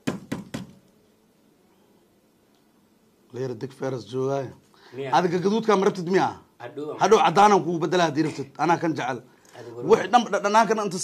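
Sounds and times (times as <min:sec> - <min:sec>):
knocks on wooden tabletop: 0:00.0 - 0:00.8.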